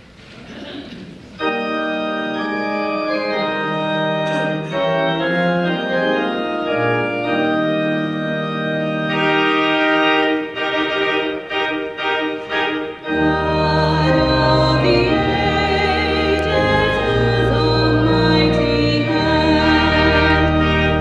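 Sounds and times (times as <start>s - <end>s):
organ playing sustained chords: 1.3s - 21.0s
low organ bass note: 13.0s - 21.0s.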